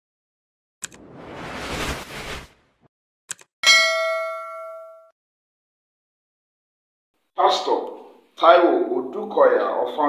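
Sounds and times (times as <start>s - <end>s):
quick clicks: 3.3s - 3.5s
bell ding: 3.6s - 5.1s.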